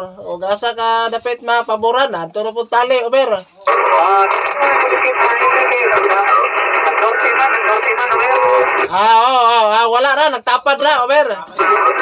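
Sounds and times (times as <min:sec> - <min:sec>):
radio static: 0:03.6 - 0:09.7, 0:11.5 - 0:12.0
voice over two-way radio: 0:03.7 - 0:09.7, 0:11.4 - 0:12.0.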